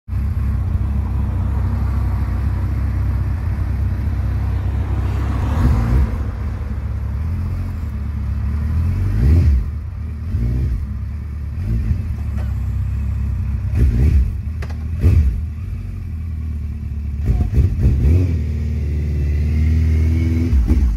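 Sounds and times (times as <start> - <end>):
motorcycle engine idling and revving: 0.1 - 20.9.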